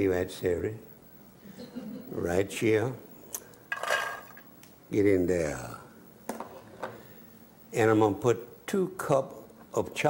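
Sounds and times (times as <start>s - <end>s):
celery scraping into metal pot: 3.7s - 4.4s.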